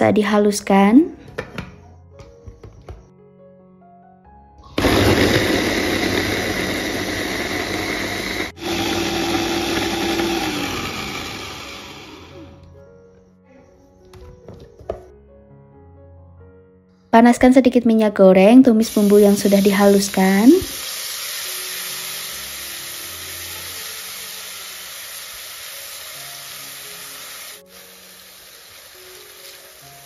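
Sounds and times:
food chopper motor whirring: 4.7s - 12.6s.

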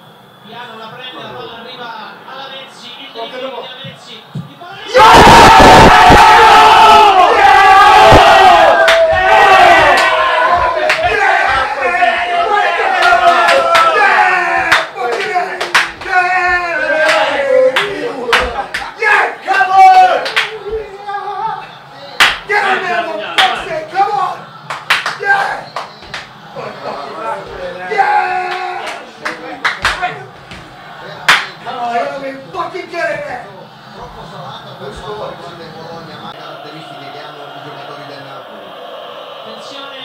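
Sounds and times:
men's voices: 0.8s - 40.0s
men cheering and chanting: 4.0s - 40.0s
sharp hand claps: 8.8s - 9.2s, 9.9s - 10.2s, 14.7s - 16.2s, 17.0s - 20.6s, 22.2s - 22.5s, 23.4s - 23.6s, 24.6s - 26.4s, 28.5s - 30.6s, 31.2s - 31.6s.

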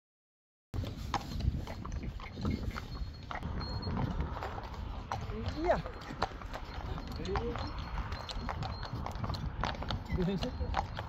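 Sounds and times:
horse hooves on asphalt: 0.8s - 11.0s.

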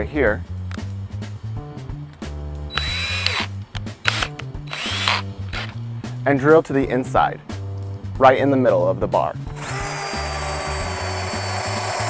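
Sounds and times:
background music: 0.0s - 12.0s
cordless drill whining: 2.7s - 5.8s, 9.6s - 12.0s.

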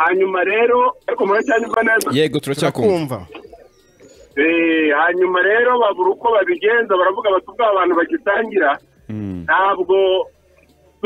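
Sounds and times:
person talking: 2.0s - 3.3s, 9.1s - 9.6s.

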